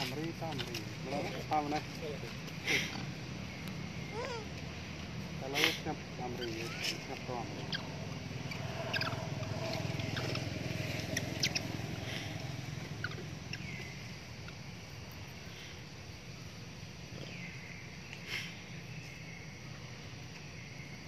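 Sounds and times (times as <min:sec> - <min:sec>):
steady low hum: 0:00.0 - 0:21.0
high falling chirps: 0:06.1 - 0:15.5.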